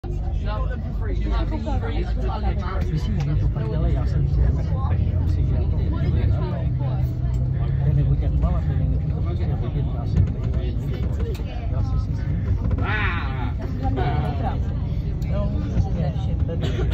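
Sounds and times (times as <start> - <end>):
road traffic rumble: 0.0 - 16.9.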